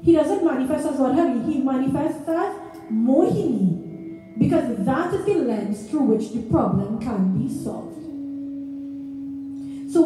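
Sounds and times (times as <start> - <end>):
low steady drone note: 0.0 - 10.0.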